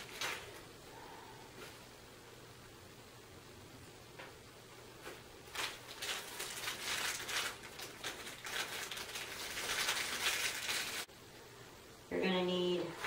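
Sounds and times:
packaging crinkling and rustling: 0:00.0 - 0:00.7, 0:05.0 - 0:11.1.

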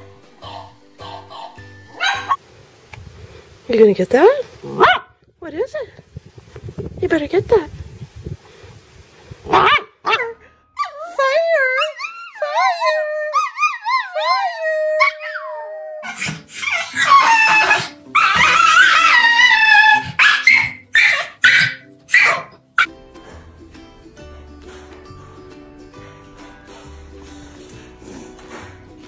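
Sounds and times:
soft background music: 0:00.0 - 0:02.4, 0:10.8 - 0:29.0
dogs howling and barking: 0:00.4 - 0:02.4, 0:09.5 - 0:22.9
dogs whining: 0:10.8 - 0:22.9.

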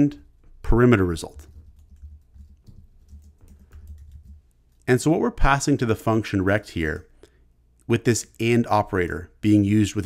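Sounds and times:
faint low hum: 0:00.0 - 0:10.0
keyboard typing: 0:01.2 - 0:04.6.

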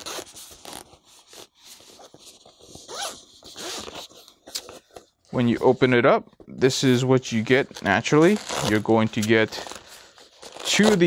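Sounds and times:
zipper unzipping: 0:02.8 - 0:04.1, 0:08.1 - 0:08.9.

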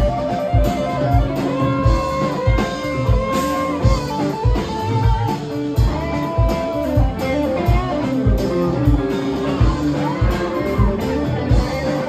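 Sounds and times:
bass guitar: 0:00.0 - 0:12.0
electric guitar lead notes: 0:00.0 - 0:12.0
steady drum beat: 0:00.0 - 0:12.0.

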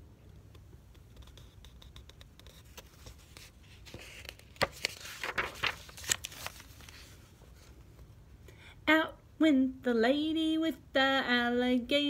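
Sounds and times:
paper page turning: 0:01.0 - 0:07.8
woman singing: 0:08.9 - 0:12.0.

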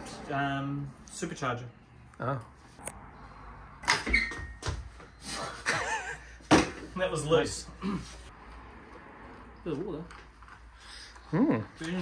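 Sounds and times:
person laughing: 0:05.4 - 0:06.4.

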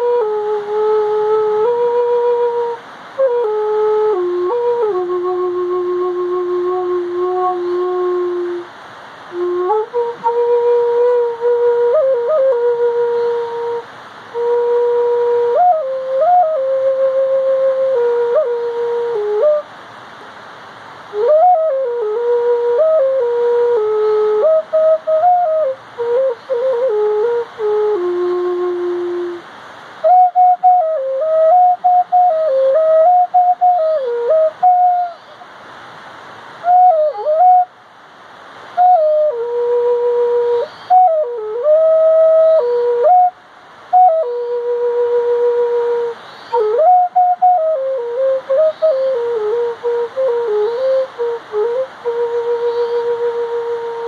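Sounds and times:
solo flute melody: 0:00.0 - 0:19.8, 0:21.0 - 0:35.6, 0:36.5 - 0:37.8, 0:38.6 - 0:54.0.

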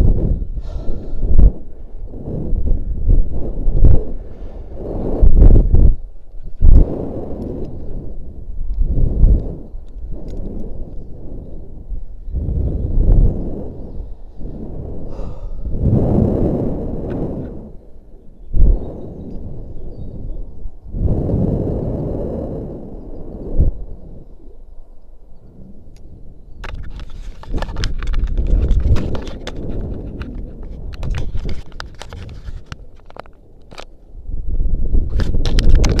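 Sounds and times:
wind buffeting microphone: 0:00.0 - 0:36.0
crackling rubs and clicks: 0:08.6 - 0:11.1, 0:25.9 - 0:34.1, 0:35.0 - 0:36.0.

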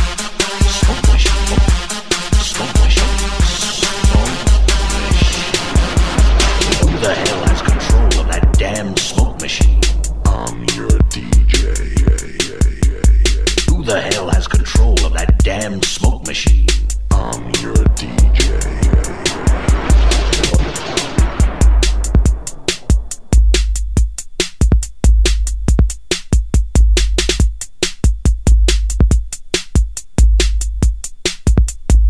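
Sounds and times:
breakbeat dance music: 0:00.0 - 0:32.0
fast drum-machine beat: 0:00.0 - 0:32.0
heavy bass line: 0:00.0 - 0:32.0
hissing wash: 0:00.8 - 0:14.7, 0:17.1 - 0:23.4
pitch-bending synth sound: 0:02.5 - 0:13.9, 0:17.1 - 0:22.5.

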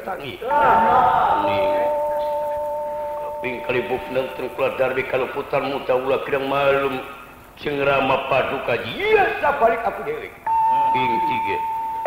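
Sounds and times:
gamelan tones ringing: 0:00.8 - 0:05.7.

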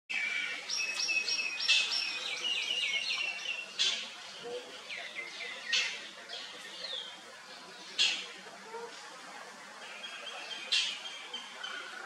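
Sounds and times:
outdoor background noise: 0:00.1 - 0:12.0.

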